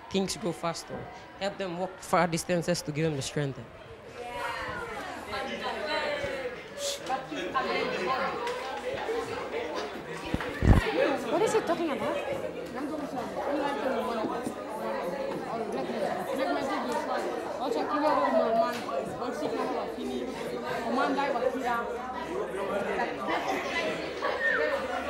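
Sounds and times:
students chattering: 0.0 - 25.0.

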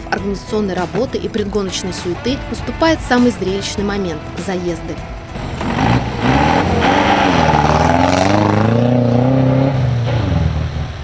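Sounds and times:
rally car passing engine revving: 5.0 - 11.0.

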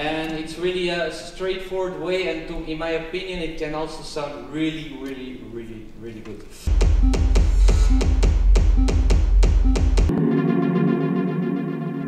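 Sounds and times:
techno beat with deep bass: 6.7 - 10.1
sustained synthesizer chords: 6.7 - 12.0.

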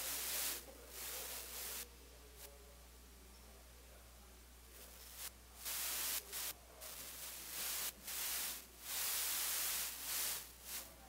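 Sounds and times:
bursts of static hiss: 0.0 - 2.5, 4.8 - 11.0.

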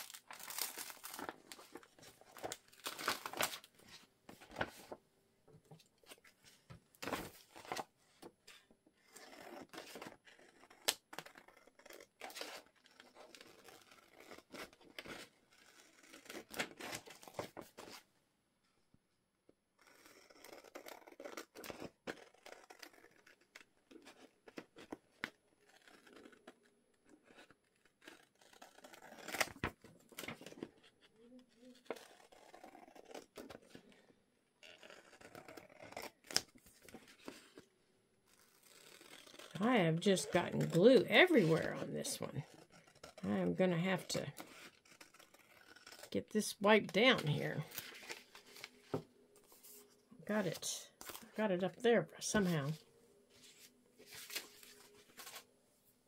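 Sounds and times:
paper rustling and crinkling: 0.0 - 5.0, 5.7 - 18.1, 47.2 - 51.4, 52.4 - 55.5.

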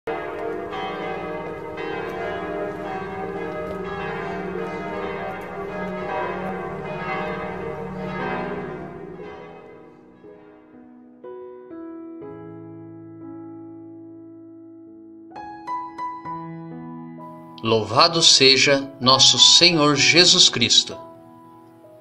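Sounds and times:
church bells ringing: 0.1 - 11.0, 17.6 - 21.0.

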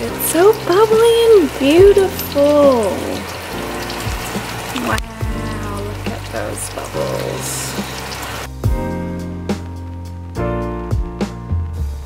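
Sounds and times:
food sizzling in a pan: 0.0 - 8.6
person speaking: 4.7 - 7.8.

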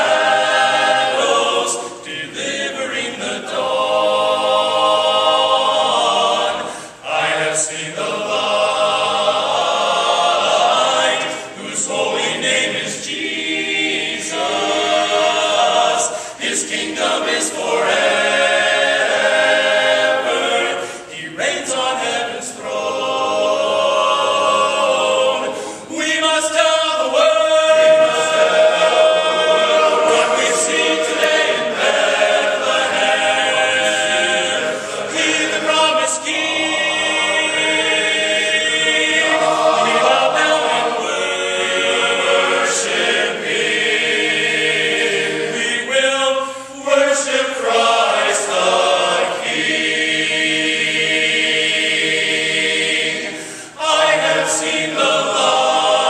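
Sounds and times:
men's chorus singing a cappella: 0.0 - 56.0.

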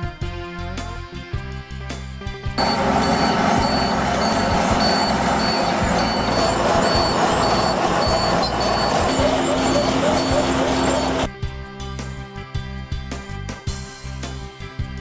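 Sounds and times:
high repeating beep: 2.6 - 11.3
paving machinery running: 2.6 - 11.3.

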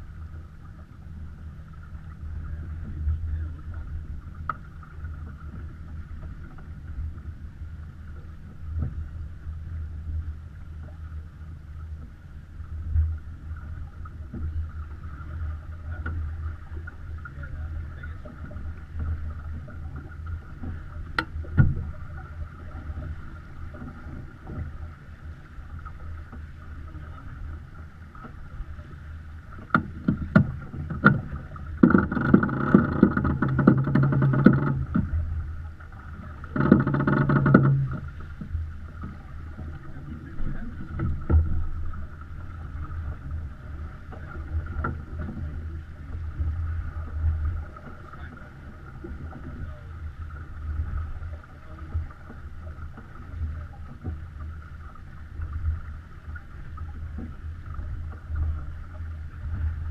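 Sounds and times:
water rushing along hull: 0.0 - 59.9.

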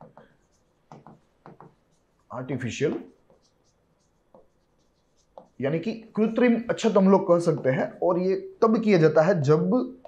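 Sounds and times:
pen strokes on glass screen: 0.0 - 7.8.

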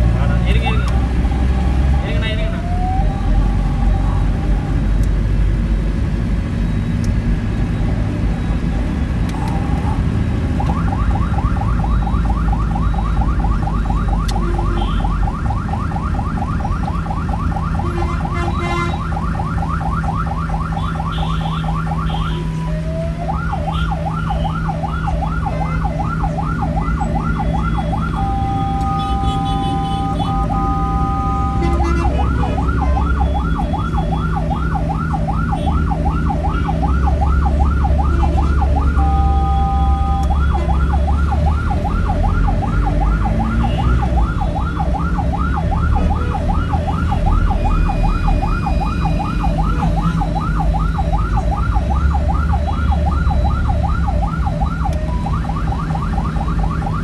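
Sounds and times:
ambulance siren: 0.0 - 5.0, 6.5 - 57.0
engine and road noise: 0.0 - 57.0.

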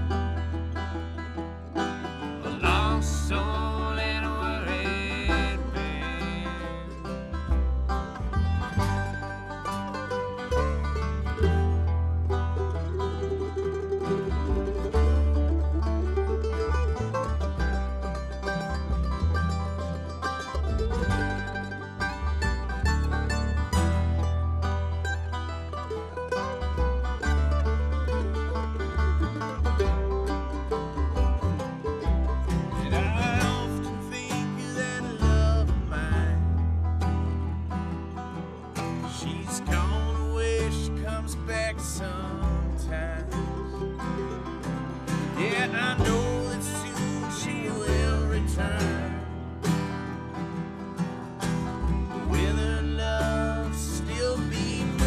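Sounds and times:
bluegrass string band playing: 0.0 - 55.0.

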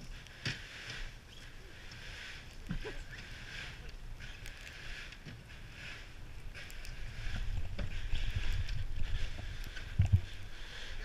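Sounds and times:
bobsled scraping: 0.0 - 11.0.

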